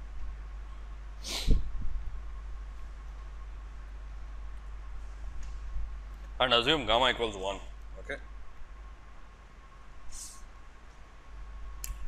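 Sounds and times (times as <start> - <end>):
steady low hum: 0.0 - 12.0
person sneezing: 1.2 - 1.6.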